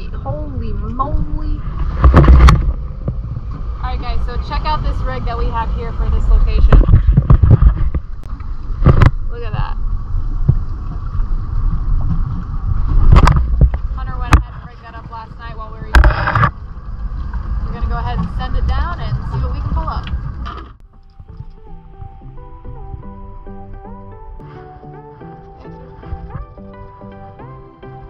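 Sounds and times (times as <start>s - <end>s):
wind buffeting microphone: 0.0s - 27.6s.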